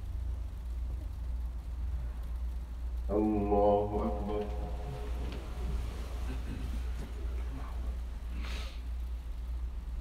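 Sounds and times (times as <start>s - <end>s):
low steady hum: 0.0s - 10.0s
man chanting: 3.1s - 6.7s.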